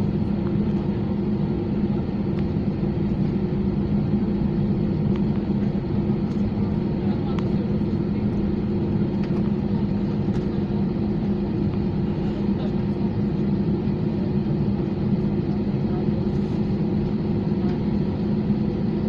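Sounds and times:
airplane cabin hum: 0.0 - 19.0.

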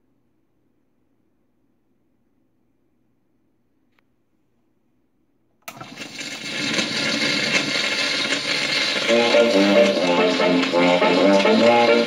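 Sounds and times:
phonograph needle dropping: 5.7 - 12.0
record surface hiss and crackle: 5.7 - 12.0.

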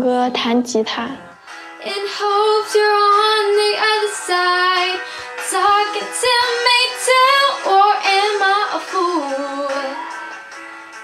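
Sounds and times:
girl singing into a microphone: 1.8 - 10.1.

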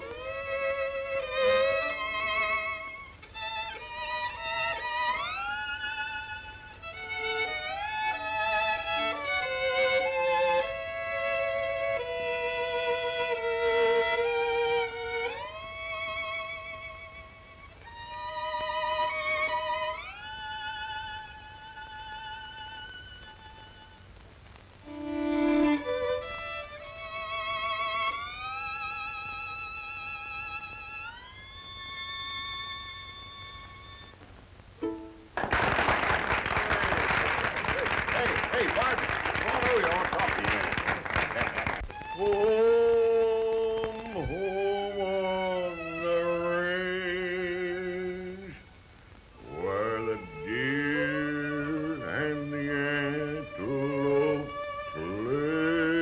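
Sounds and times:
solo violin slow melody: 0.0 - 35.4, 41.7 - 56.0.

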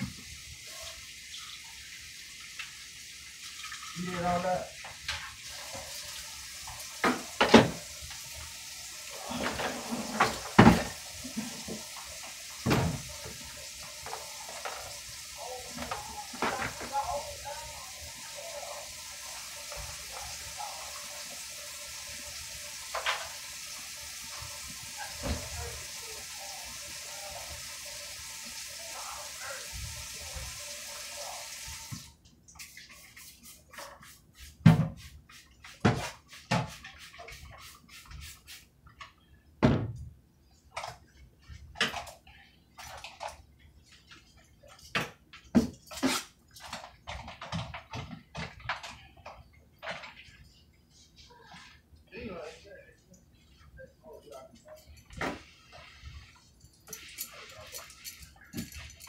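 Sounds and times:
faucet running into steel sink: 0.0 - 33.8, 54.6 - 59.0
dishes clinking against sink: 56.8 - 59.0.

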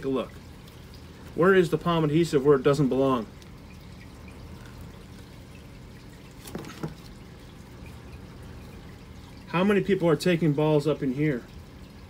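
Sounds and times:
water trickling from filter: 0.0 - 12.0.

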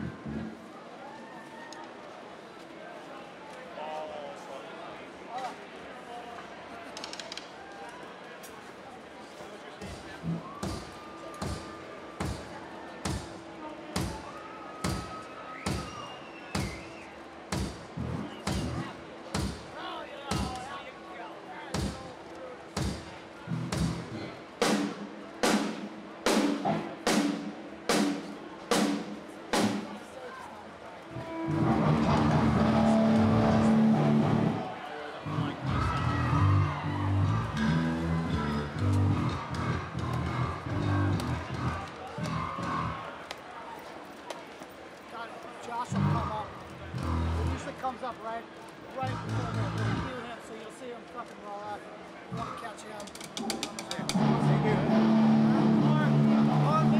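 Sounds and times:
steady beat of sharp thumps: 10.0 - 13.4, 17.5 - 20.6, 22.7 - 29.9, 49.1 - 50.1
loud sustained music: 54.0 - 56.9.

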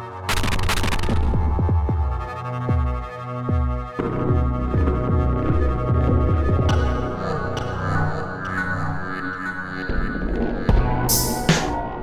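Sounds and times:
pulsing synth bass: 0.1 - 12.0
sharp high percussion hit: 11.1 - 11.8.

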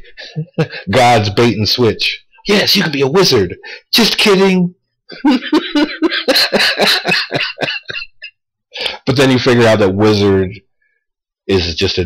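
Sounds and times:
man laughing hard: 0.0 - 1.0, 5.1 - 8.3.

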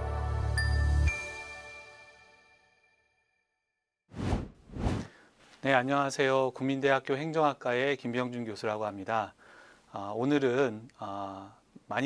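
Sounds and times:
whoosh sound effects: 4.1 - 5.1.

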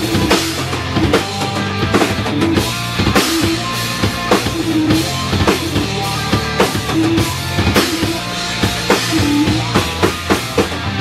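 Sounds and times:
drums hitting steady beat: 0.0 - 11.0
live rock band playing: 0.0 - 11.0.

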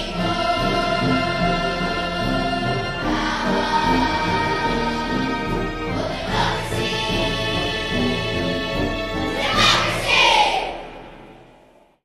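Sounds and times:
choir singing held notes: 0.0 - 11.5.

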